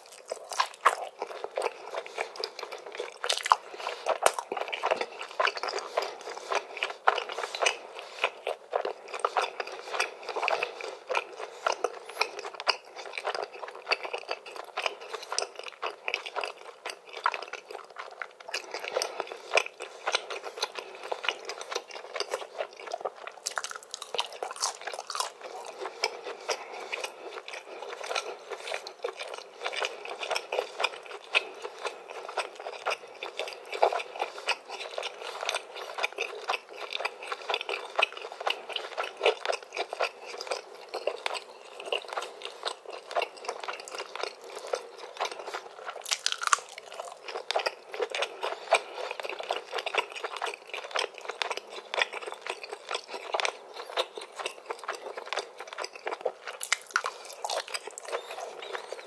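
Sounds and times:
close-miked chewing and crunching: 0.0 - 59.0.

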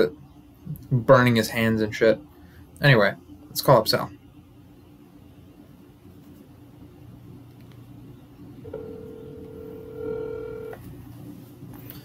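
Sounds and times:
phone ringback tone: 8.6 - 10.8.

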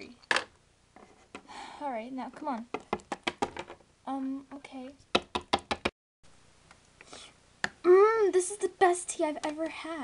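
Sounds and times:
plastic figurine tapping on table: 5.1 - 5.9.

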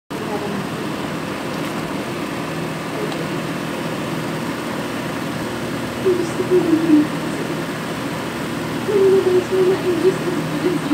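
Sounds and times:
low hum: 0.1 - 10.9
pot boiling hard: 0.2 - 9.6.

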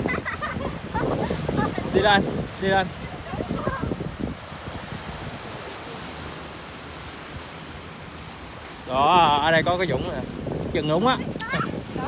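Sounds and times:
waves breaking on rocks: 0.0 - 12.0.

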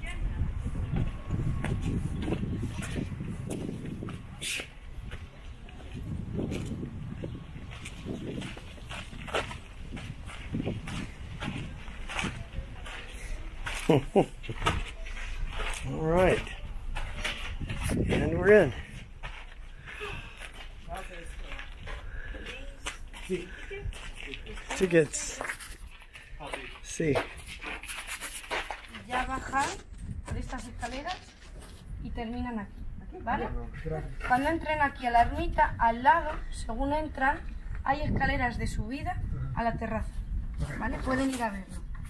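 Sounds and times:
wind rumble on microphone: 0.0 - 13.6, 14.4 - 23.1, 29.2 - 42.0
footsteps on stony path: 0.6 - 32.0, 40.2 - 42.0.

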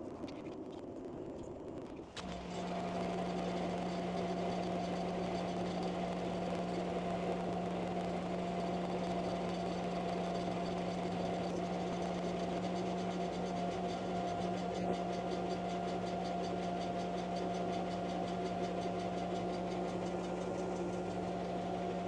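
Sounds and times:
high machine whine: 2.1 - 22.0
laser engraver humming: 2.3 - 22.0.

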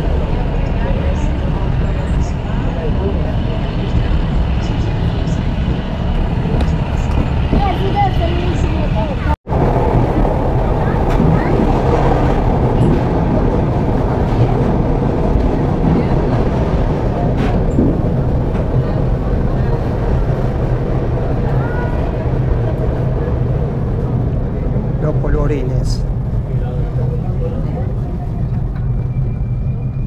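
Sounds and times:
train wheels rumbling on track: 0.0 - 30.0.

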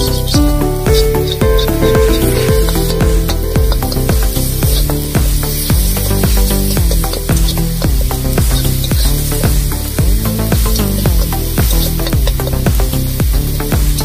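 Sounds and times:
background music with steady beat: 0.0 - 14.0
sauce sizzling in hot oil: 2.3 - 14.0.

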